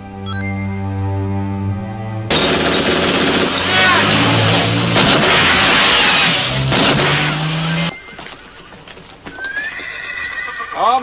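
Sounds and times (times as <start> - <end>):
orchestral string music: 0.0 - 2.3
rough action noise with screeches: 3.6 - 7.8.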